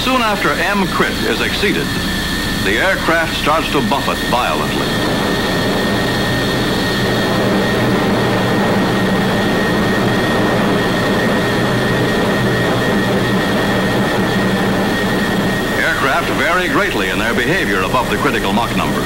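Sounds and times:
jet aircraft flying past: 0.0s - 19.0s.

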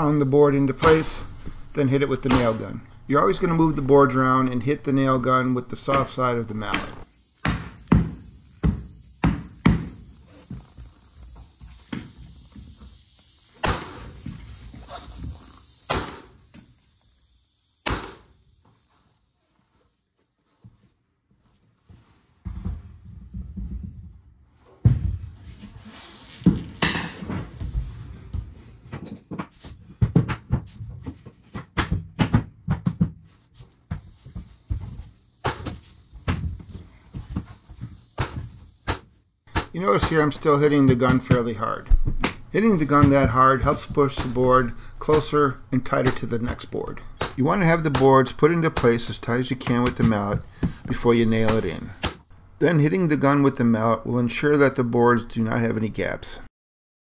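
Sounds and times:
mallet striking flooring nailer: 0.6s - 4.2s, 5.0s - 10.6s, 13.6s - 16.7s, 17.8s - 18.4s, 37.8s - 45.4s.

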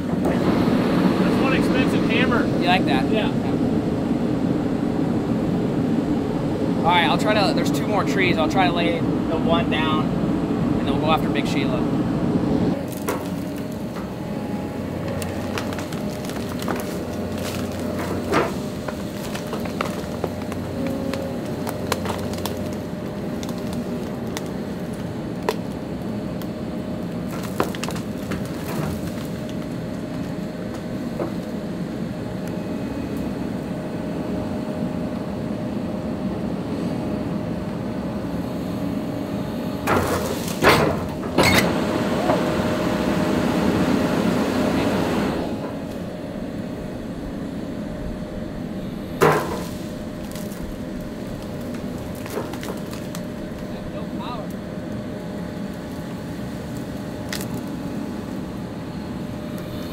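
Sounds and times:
diesel engine and hydraulics running: 0.0s - 59.9s
tree trunk cracking and splintering: 12.8s - 14.2s, 14.9s - 31.7s, 49.2s - 58.4s.

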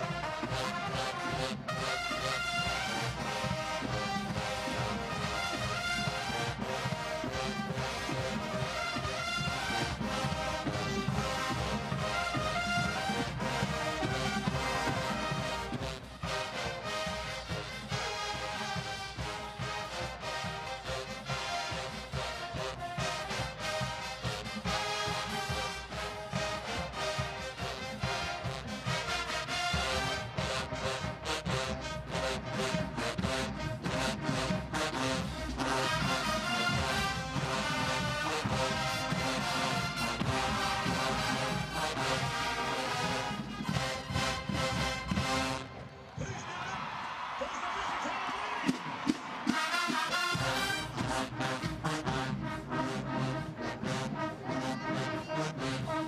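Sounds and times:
steady drum beat: 0.0s - 45.7s, 46.3s - 56.0s
marching band brass: 0.0s - 56.0s.

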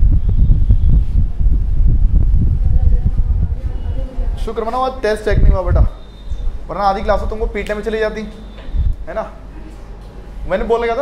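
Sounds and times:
wind buffeting microphone: 0.0s - 7.6s, 8.7s - 9.1s.

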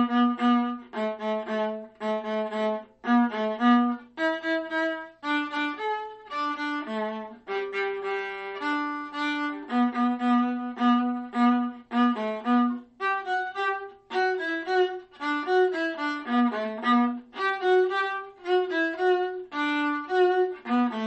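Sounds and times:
solo viola bowing: 0.0s - 21.0s.

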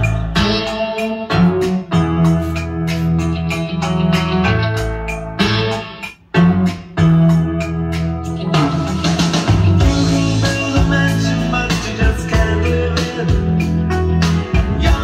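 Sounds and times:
pop song over loudspeakers: 0.0s - 15.0s.

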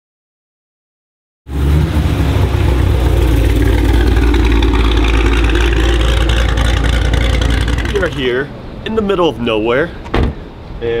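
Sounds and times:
loud car engine rumbling: 1.5s - 10.8s.

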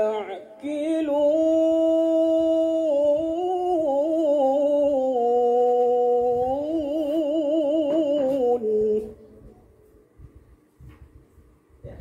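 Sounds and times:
man chanting melodic recitation: 0.0s - 9.3s.

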